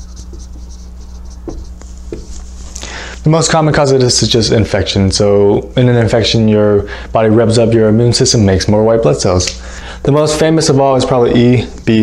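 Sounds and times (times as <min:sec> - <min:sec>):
marker writing on a whiteboard: 0:00.0 - 0:02.6.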